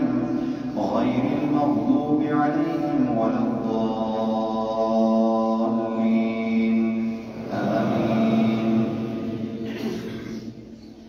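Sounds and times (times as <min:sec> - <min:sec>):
man chanting melodically: 0:00.0 - 0:09.7.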